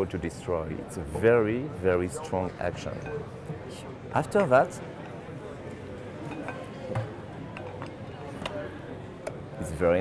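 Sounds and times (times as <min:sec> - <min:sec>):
voices in busy hall: 0:00.0 - 0:10.0.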